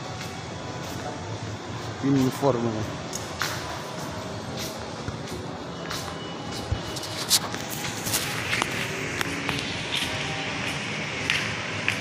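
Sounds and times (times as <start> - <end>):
faint background music: 0.0 - 12.0
soft footsteps: 0.1 - 12.0.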